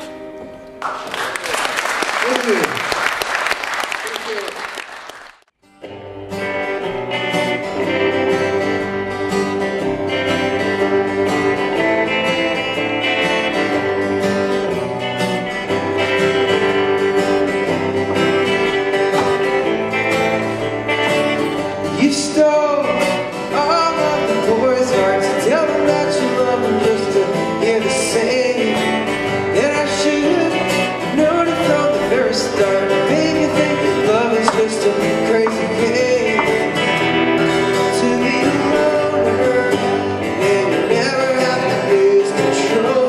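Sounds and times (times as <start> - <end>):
acoustic and electric guitars playing: 0.0 - 1.1, 5.6 - 43.0
audience applauding: 0.8 - 5.5.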